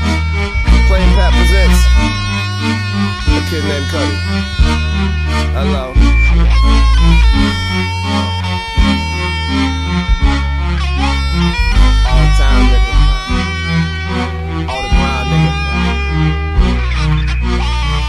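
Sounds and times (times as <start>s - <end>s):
instrumental hip-hop music: 0.0s - 18.0s.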